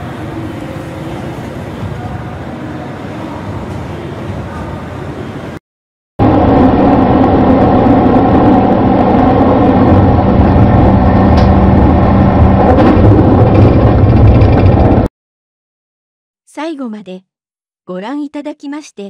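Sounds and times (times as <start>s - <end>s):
train running noise: 0.0s - 5.6s, 6.2s - 15.1s.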